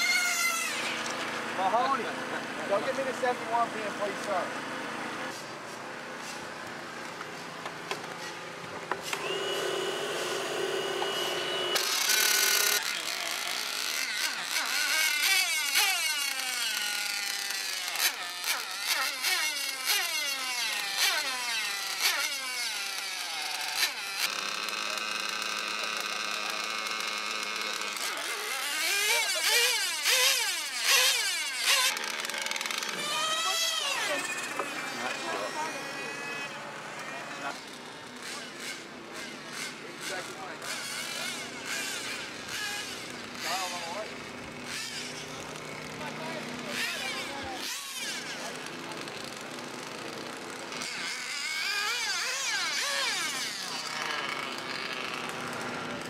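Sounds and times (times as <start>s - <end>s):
rc car motors revving: 0.0s - 5.4s, 8.2s - 56.0s.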